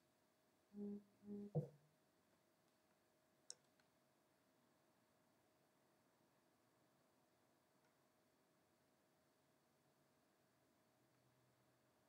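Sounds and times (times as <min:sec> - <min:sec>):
person humming low: 0:00.7 - 0:01.7.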